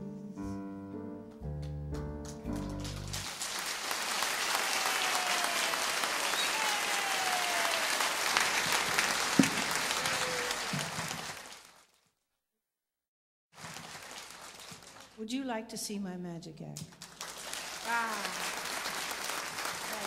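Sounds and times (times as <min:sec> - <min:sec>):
concert audience applauding: 0:02.4 - 0:11.9, 0:13.6 - 0:15.2, 0:17.0 - 0:20.0.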